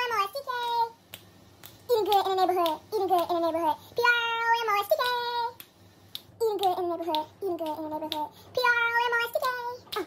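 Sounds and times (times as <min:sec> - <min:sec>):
boy singing: 0:00.0 - 0:01.0, 0:01.9 - 0:05.6, 0:06.4 - 0:10.0.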